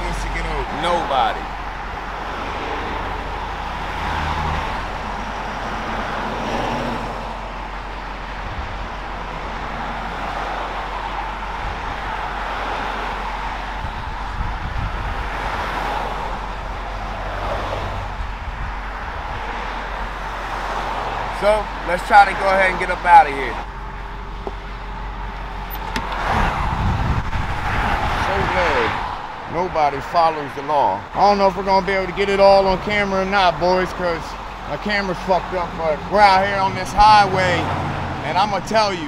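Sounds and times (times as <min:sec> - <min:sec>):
truck engine humming low: 0:00.0 - 0:27.6
highway traffic passing: 0:00.0 - 0:39.0.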